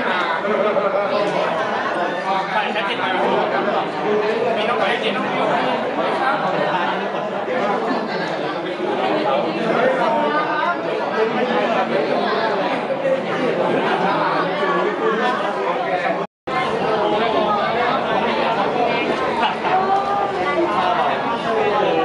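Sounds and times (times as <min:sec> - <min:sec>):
crowd chatter in hall: 0:00.0 - 0:22.0.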